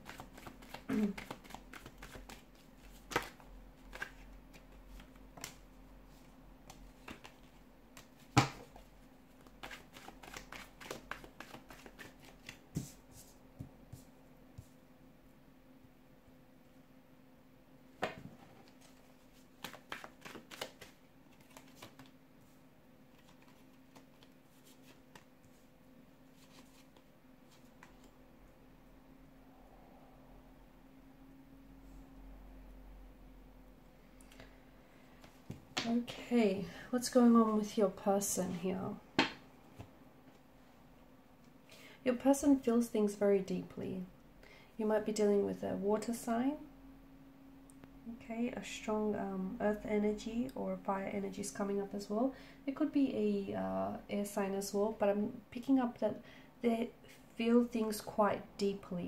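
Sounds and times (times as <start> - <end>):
woman speaking: 0.9 - 1.2, 35.8 - 39.1, 42.0 - 44.1, 44.8 - 46.7, 48.0 - 59.0
cards flicking and tapping on table: 39.2 - 39.4.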